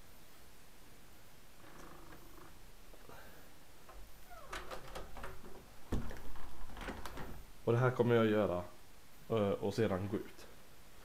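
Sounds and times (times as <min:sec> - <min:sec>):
clicks and light knocks at door: 0:03.8 - 0:07.5
rustling: 0:03.8 - 0:07.7.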